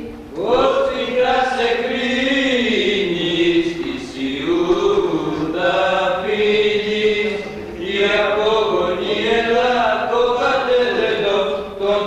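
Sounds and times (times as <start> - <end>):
unaccompanied chant: 0.0 - 12.0.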